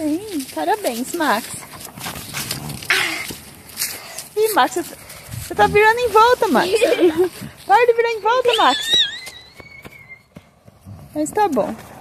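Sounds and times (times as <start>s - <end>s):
footfalls on grass and leaves: 0.0s - 9.7s.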